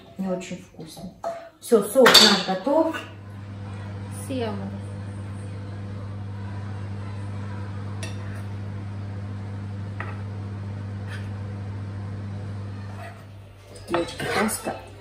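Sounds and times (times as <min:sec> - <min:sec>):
low hum: 0:03.2 - 0:12.9.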